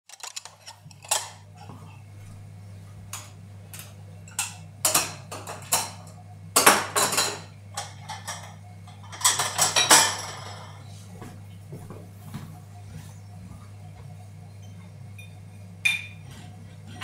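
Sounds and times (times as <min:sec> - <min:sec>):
dishes and cutlery clattering: 0:00.1 - 0:01.8, 0:03.2 - 0:10.9, 0:14.6 - 0:17.0
steady low hum: 0:00.1 - 0:17.0.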